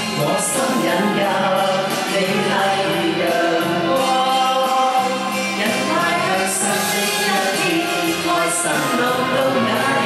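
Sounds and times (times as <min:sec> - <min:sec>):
man singing: 0:00.0 - 0:10.0
pop backing track: 0:00.0 - 0:10.0
woman singing: 0:00.0 - 0:10.0.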